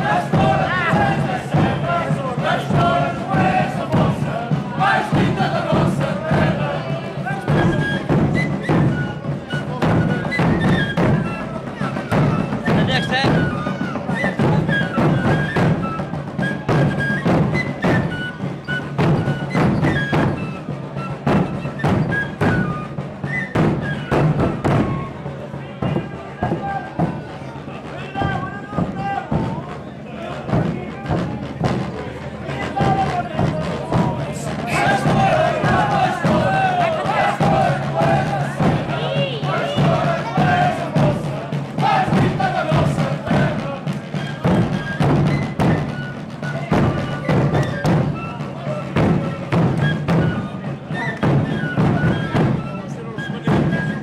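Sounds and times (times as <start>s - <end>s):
bass drums beaten with mallets: 0.0s - 13.7s, 23.6s - 48.3s
voices: 0.0s - 54.0s.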